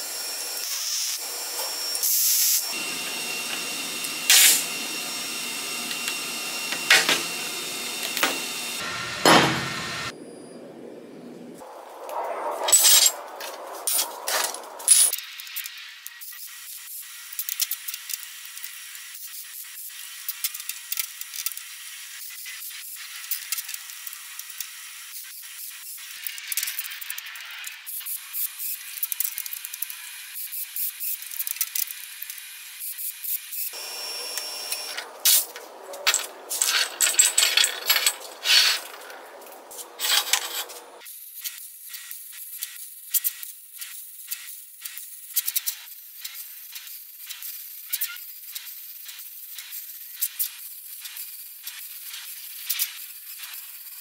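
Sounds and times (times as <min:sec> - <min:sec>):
welding arc crackling and hissing: 0:00.0 - 0:10.1, 0:13.4 - 0:37.0, 0:38.2 - 0:54.0.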